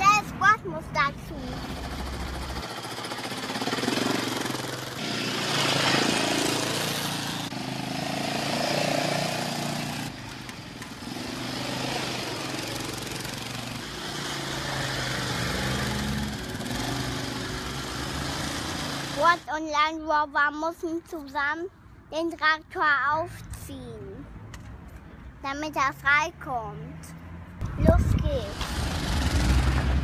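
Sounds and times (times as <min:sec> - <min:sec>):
child making motor noise: 0:00.0 - 0:02.0, 0:19.0 - 0:19.7, 0:27.6 - 0:29.5.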